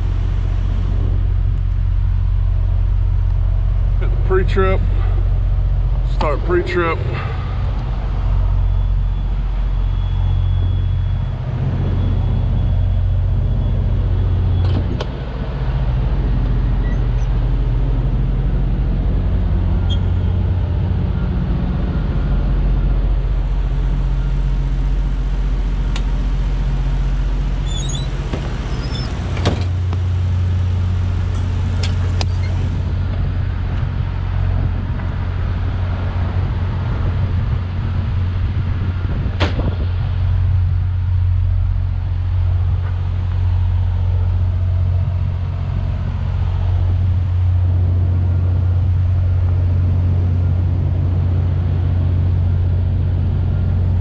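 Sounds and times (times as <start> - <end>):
refrigeration unit humming: 0.0 - 54.0.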